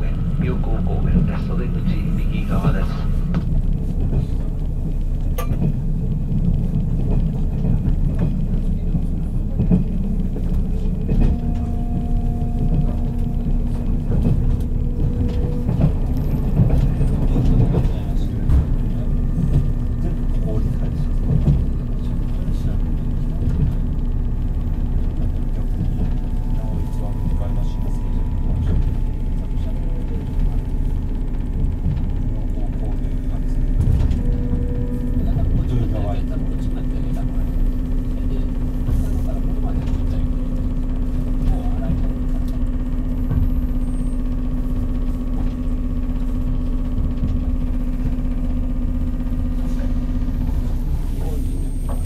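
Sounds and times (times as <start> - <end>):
constant low hum: 0.0 - 52.0
train running rumble: 0.0 - 52.0.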